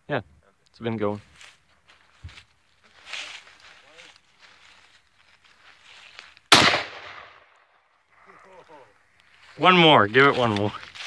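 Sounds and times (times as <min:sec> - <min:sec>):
rifle shot echoing: 0:06.5 - 0:07.8.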